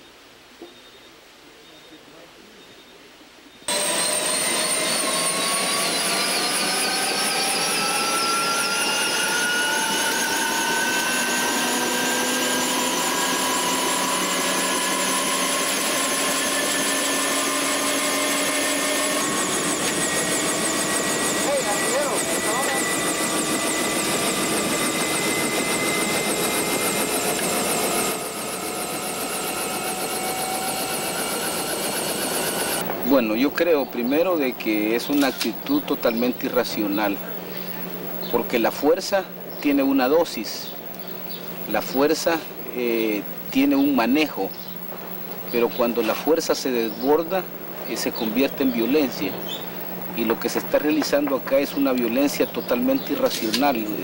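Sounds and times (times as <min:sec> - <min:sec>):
helicopter turbine whining: 0:03.7 - 0:54.0.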